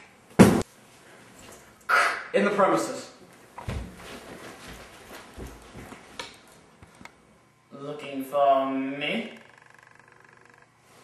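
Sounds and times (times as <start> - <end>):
person landing thump: 0.4 - 0.7, 3.6 - 4.8.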